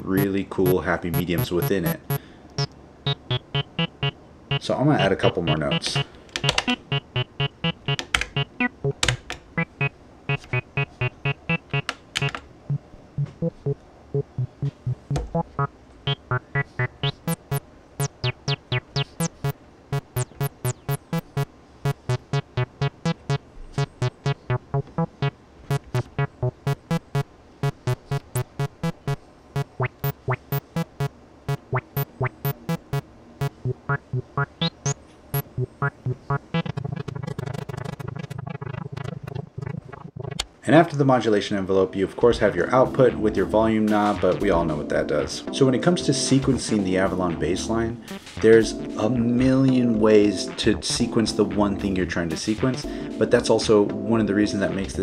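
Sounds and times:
looping acid bass synth pattern: 0.0 - 40.4.

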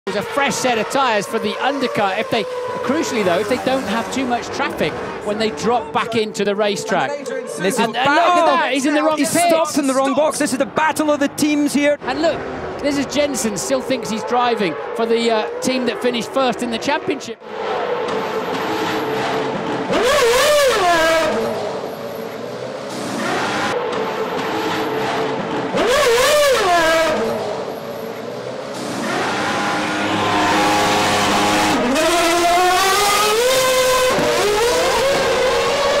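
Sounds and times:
racing car engines: 0.1 - 36.0.

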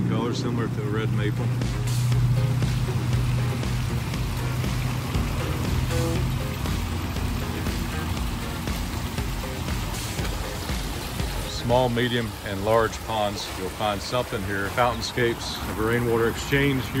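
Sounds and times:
background music: 0.0 - 17.0
fountain bubbling: 0.0 - 17.0
small waterfalls splashing: 0.1 - 17.0.

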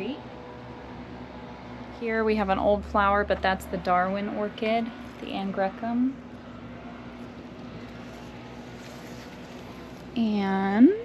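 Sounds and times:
background noise: 0.0 - 11.0
low machine hum: 0.0 - 11.0.

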